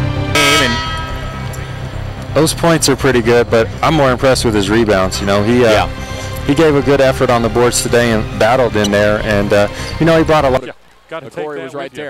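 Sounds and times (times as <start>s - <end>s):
loud falling-pitch burst: 0.0s - 6.1s
broadcast theme music: 0.0s - 10.9s.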